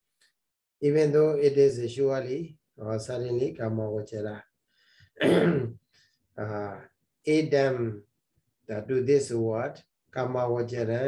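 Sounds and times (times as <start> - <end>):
man speaking: 0.8 - 4.4, 6.4 - 8.1, 8.7 - 11.0
man coughing: 5.2 - 5.8.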